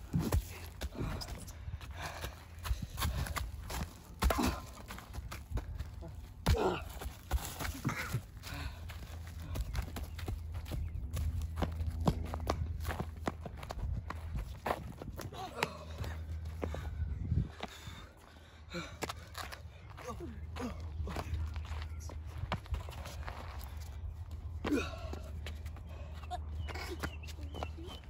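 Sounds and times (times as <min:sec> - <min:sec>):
footsteps on wood chips and concrete: 0:00.0 - 0:16.8, 0:19.0 - 0:24.6
grunts and gasps: 0:00.1 - 0:03.6, 0:04.2 - 0:09.8, 0:24.6 - 0:27.0.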